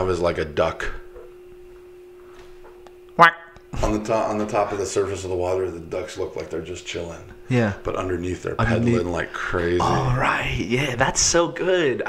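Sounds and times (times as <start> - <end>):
steady pure tone: 0.0 - 12.0.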